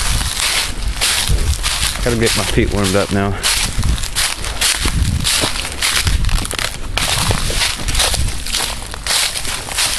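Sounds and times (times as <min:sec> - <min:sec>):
footsteps on dry leaves: 0:00.0 - 0:09.9.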